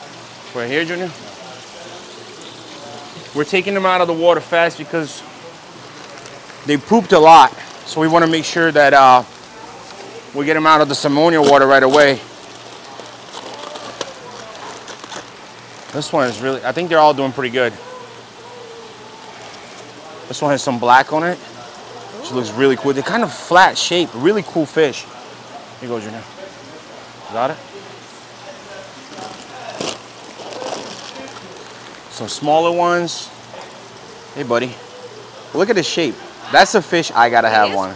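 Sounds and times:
water dripping: 0:00.0 - 0:21.6
faint voices: 0:00.0 - 0:37.9
wet plastic bags crinkling: 0:04.6 - 0:20.2, 0:28.5 - 0:33.9.

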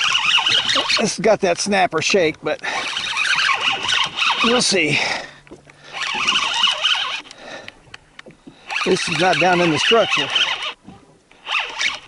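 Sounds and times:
fishing reel whirring: 0:00.0 - 0:01.2, 0:02.0 - 0:07.7, 0:08.6 - 0:12.0
faint reel clicks: 0:02.2 - 0:12.0.

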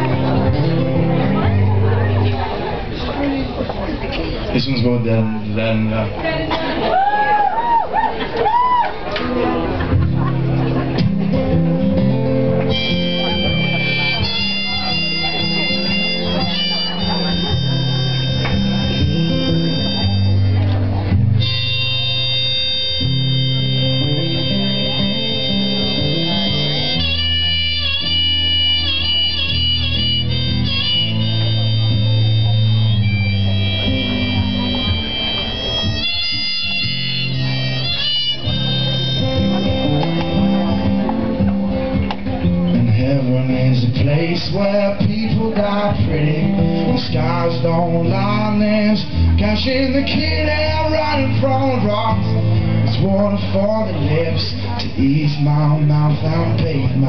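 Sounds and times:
harmonica melody: 0:00.0 - 0:02.5, 0:10.4 - 0:42.8, 0:45.8 - 0:55.0
acoustic guitar strumming: 0:00.0 - 0:03.1, 0:09.1 - 0:57.0.

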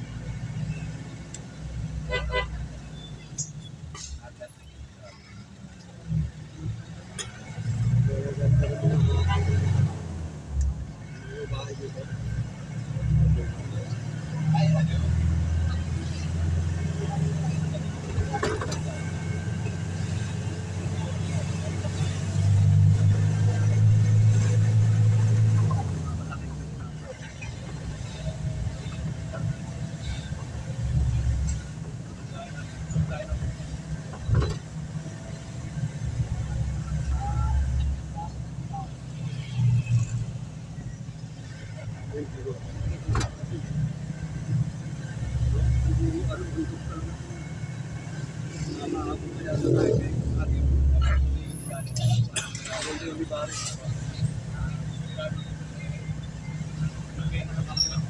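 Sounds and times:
van engine and road rumble: 0:00.0 - 0:58.0.

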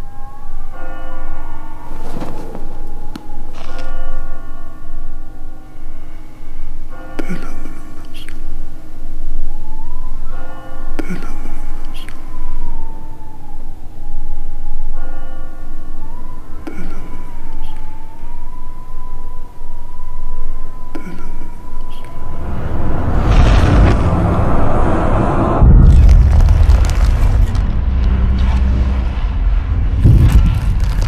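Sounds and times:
large bell ringing: 0:00.0 - 0:25.6
high siren-like tone: 0:00.0 - 0:26.1
deep rumble: 0:22.2 - 0:31.0.

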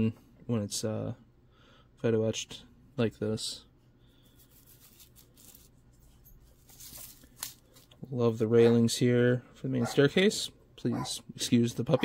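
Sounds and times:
brushing sounds: 0:04.2 - 0:07.5
metal sheet rustling on paper: 0:04.3 - 0:08.0.

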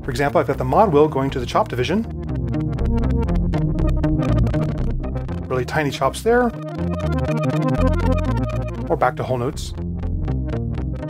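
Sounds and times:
chopped synthesizer music: 0:00.5 - 0:11.0.

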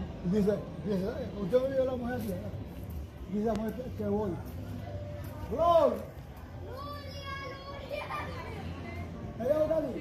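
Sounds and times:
children's voices: 0:06.6 - 0:09.0.

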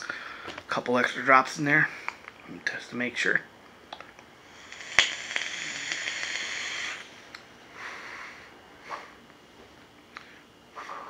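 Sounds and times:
e-cigarette coil hissing and sizzling: 0:04.4 - 0:07.1
vapour breathed out: 0:04.5 - 0:07.1.

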